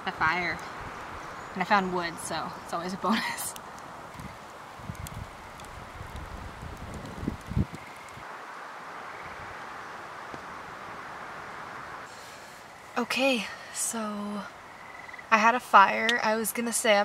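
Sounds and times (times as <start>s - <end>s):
wind buffeting microphone: 0.2s - 8.3s
wind rushing: 4.1s - 8.3s.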